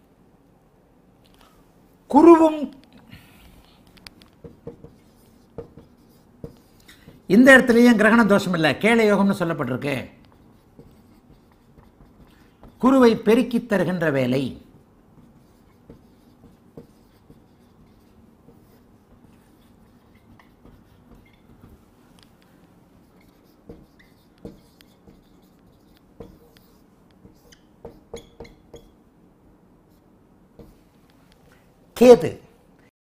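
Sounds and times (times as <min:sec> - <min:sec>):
marker rubbing on whiteboard: 0:03.8 - 0:28.9, 0:29.9 - 0:30.9
pen tapping on board: 0:04.2 - 0:07.3, 0:10.2 - 0:13.1, 0:15.2 - 0:21.8, 0:23.6 - 0:28.9
marker ticks: 0:15.4 - 0:22.3, 0:23.1 - 0:28.9.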